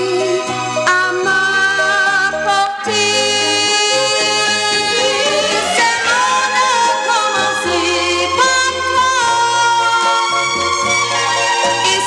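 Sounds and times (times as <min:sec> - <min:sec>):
pop ballad with orchestral backing: 0:00.0 - 0:12.0.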